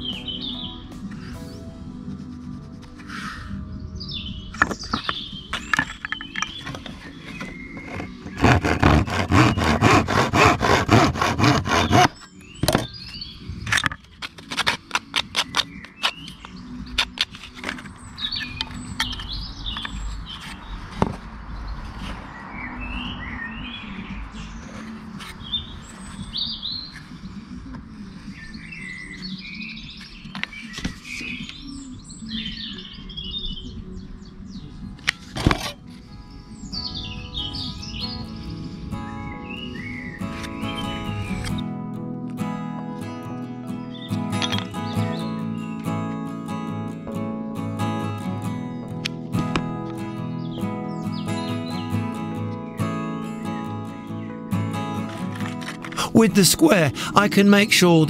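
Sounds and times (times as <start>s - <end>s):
birds chirping: 0.0s - 14.3s, 15.1s - 58.0s
faint background music: 0.0s - 58.0s
hand tool rasping wood: 7.0s - 12.2s, 14.3s - 16.2s.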